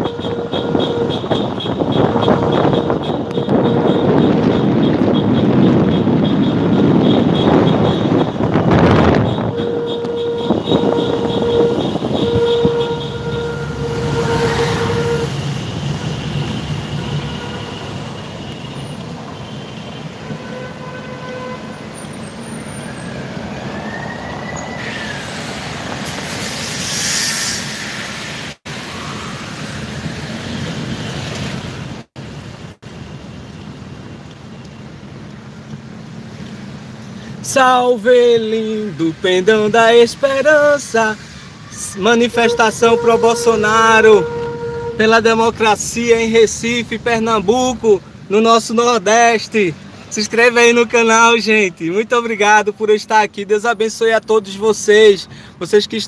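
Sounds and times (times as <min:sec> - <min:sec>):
car horns tooting: 0:00.0 - 0:23.2, 0:41.7 - 0:47.8
car engines: 0:00.0 - 0:56.0
traffic noise: 0:00.0 - 0:56.0.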